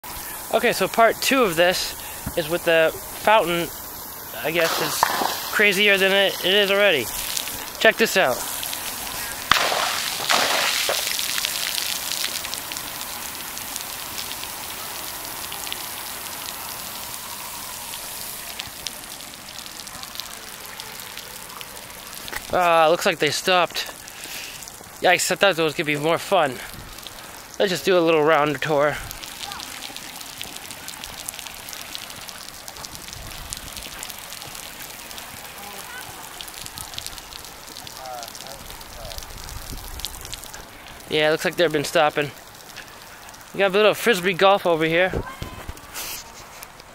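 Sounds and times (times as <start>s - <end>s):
patter of drips: 0.0s - 46.9s
water splashing onto wet pavement: 0.0s - 46.9s
crackling hiss of small ticks: 0.1s - 27.6s, 28.5s - 44.6s, 45.4s - 46.9s.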